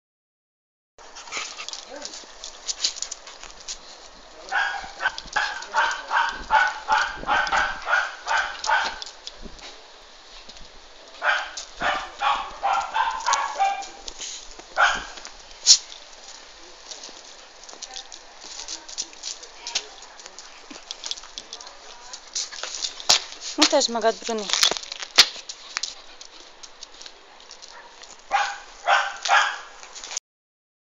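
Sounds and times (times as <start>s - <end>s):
dogs barking: 4.4s - 9.2s, 11.2s - 14.1s, 14.8s - 15.3s, 27.6s - 29.8s.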